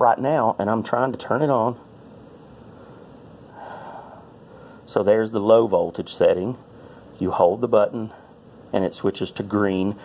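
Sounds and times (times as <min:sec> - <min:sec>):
faint background hiss: 0:00.0 - 0:10.0
person breathing softly: 0:02.6 - 0:04.9, 0:06.7 - 0:07.2.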